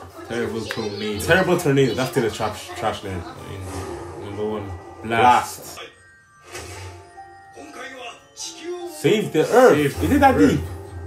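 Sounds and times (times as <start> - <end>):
background music with held tones: 0.0 - 11.0
man speaking: 0.3 - 3.2, 4.2 - 6.0, 7.6 - 10.7.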